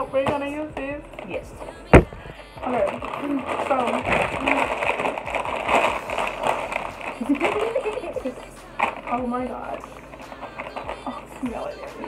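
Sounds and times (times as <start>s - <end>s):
chip bags crinkling: 0.0s - 12.0s.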